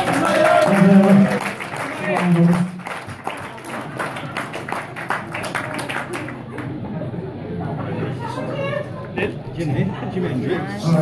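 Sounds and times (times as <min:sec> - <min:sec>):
crowd applauding: 0:00.0 - 0:06.8.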